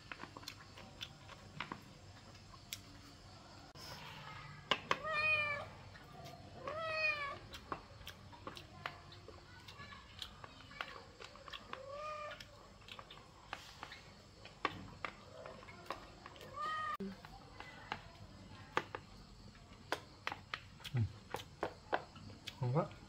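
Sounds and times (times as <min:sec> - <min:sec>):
cat meowing: 0:05.0 - 0:05.7, 0:06.6 - 0:07.4, 0:11.8 - 0:12.4, 0:16.4 - 0:17.0.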